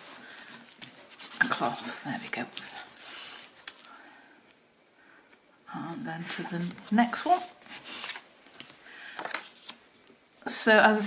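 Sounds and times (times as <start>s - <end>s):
hand rubbing paper: 0.0s - 3.6s.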